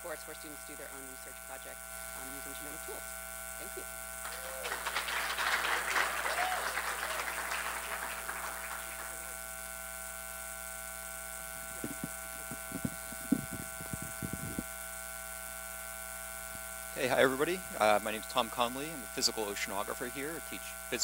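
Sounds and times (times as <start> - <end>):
electrical hum and buzz: 0.0 - 21.0
audience applause: 4.2 - 9.4.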